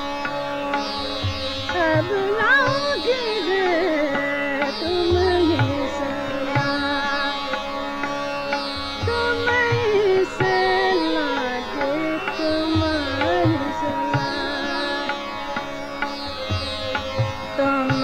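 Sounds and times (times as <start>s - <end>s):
woman singing ornamented phrases: 1.8s - 7.1s, 9.1s - 15.1s, 17.6s - 18.0s.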